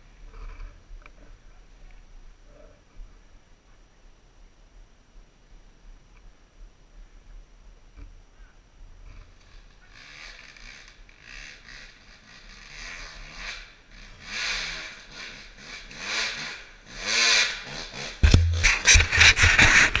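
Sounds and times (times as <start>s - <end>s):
dirt bike engine revving: 9.2s - 20.0s.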